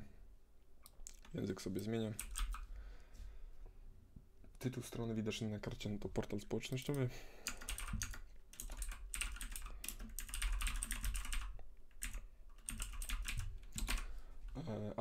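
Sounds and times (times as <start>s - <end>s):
typing on computer keyboard: 2.1s - 2.6s, 6.9s - 14.1s.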